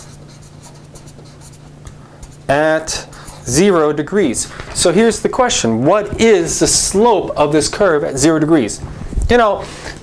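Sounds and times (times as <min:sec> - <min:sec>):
marker writing on paper: 0:00.0 - 0:03.6.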